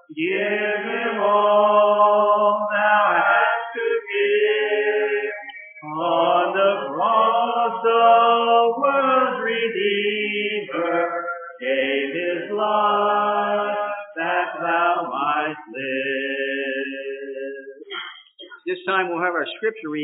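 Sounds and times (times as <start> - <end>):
congregation singing a hymn: 0.0 - 17.8.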